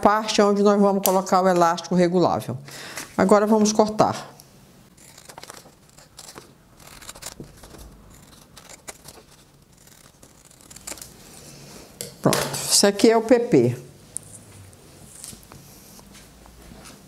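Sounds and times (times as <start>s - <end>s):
paper rustling: 5.0s - 11.2s
scissors snipping paper: 5.0s - 11.2s.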